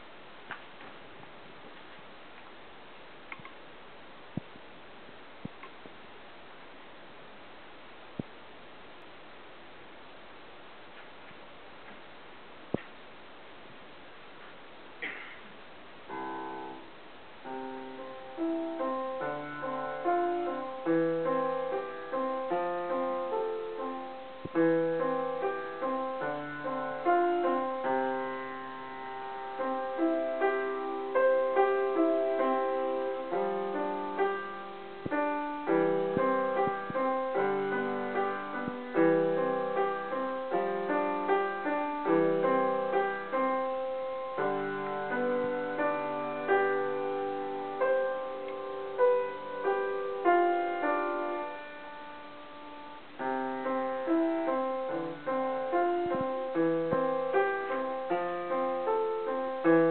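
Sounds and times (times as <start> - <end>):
solo acoustic piano: 0.0 - 59.9.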